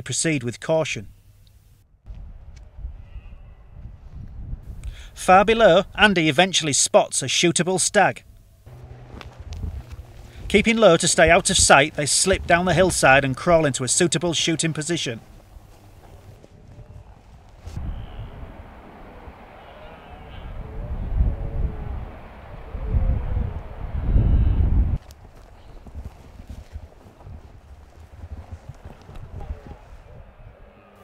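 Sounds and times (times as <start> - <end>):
wind rumbling on microphone: 2.1 - 6.0, 8.7 - 13.9, 15.2 - 30.8
clothing rustling through bracken: 8.7 - 17.8, 25.0 - 30.0.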